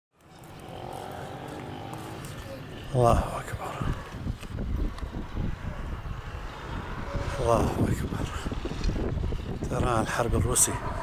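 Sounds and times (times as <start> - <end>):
distant jet engines roaring overhead: 0.2 - 11.0.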